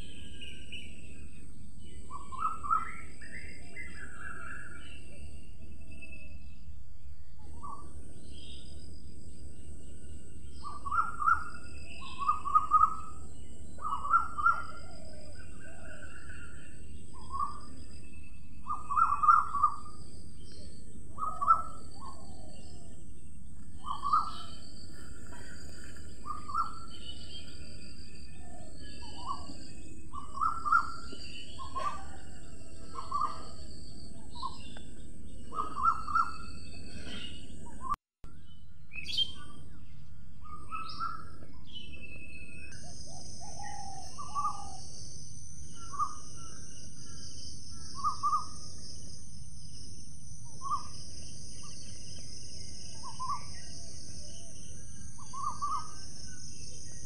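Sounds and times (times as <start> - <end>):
birds calling: 0.0 - 6.7, 7.4 - 57.0
higher bird chirps: 10.0 - 57.0.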